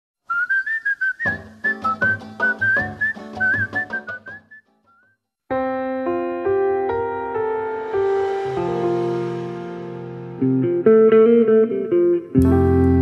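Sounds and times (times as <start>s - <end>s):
whistled melody: 0.2s - 5.2s.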